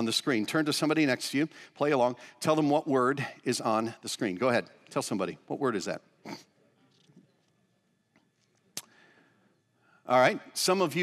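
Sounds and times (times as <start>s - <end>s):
short breath: 8.8s - 10.1s.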